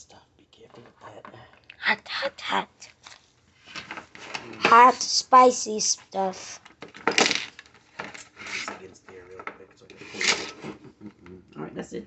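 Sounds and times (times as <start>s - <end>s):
low indistinct speech: 0.0s - 2.6s, 4.4s - 6.6s, 8.7s - 12.0s
tools clattering on a table: 3.7s - 4.4s, 6.6s - 8.8s, 10.1s - 10.7s.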